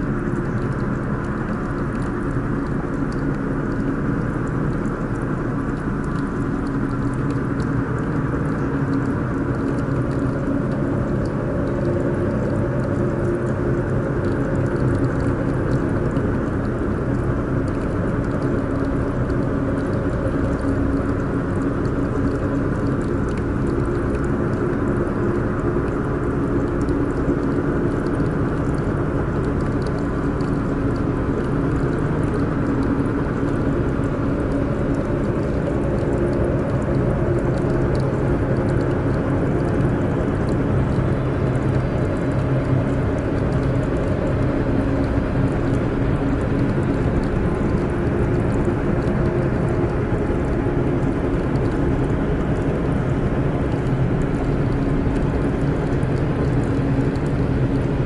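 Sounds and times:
ambient drone music: 34.5s - 36.2s.

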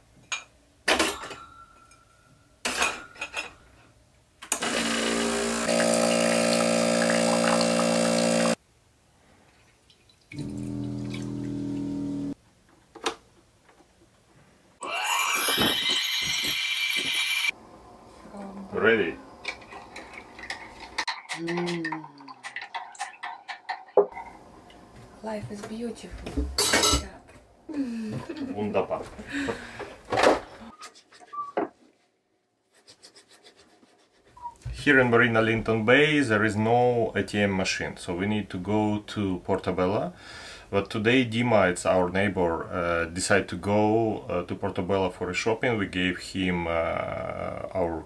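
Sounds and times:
espresso machine grinder humming: 4.6s - 8.6s.

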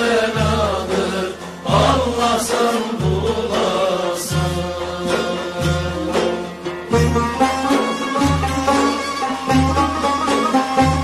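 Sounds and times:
held chant-like vocal: 0.0s - 7.1s.

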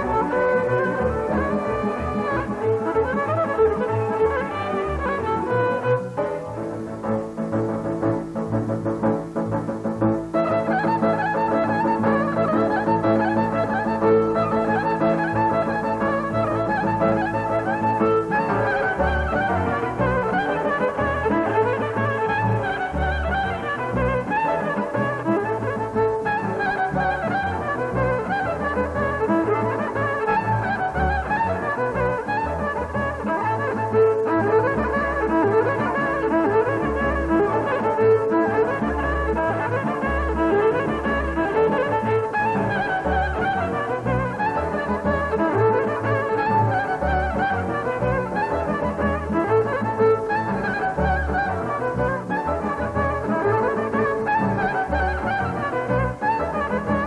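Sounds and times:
clarinet melody: 0.0s - 57.0s
double bass: 0.0s - 57.0s
violin melody: 0.0s - 57.0s.

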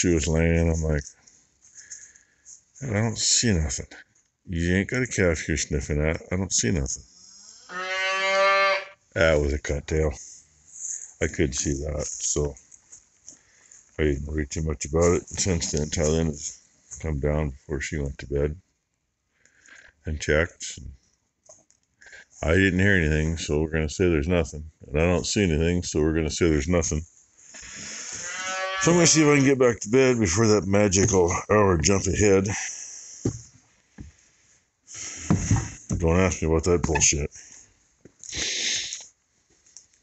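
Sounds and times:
calf bawling: 7.2s - 9.0s
cow mooing: 7.2s - 9.0s, 28.1s - 29.2s.

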